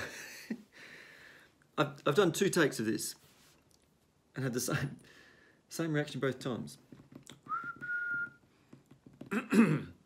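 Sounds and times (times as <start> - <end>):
thin steady whistling tone: 7.4 - 8.5
man clearing his throat: 9.3 - 10.0.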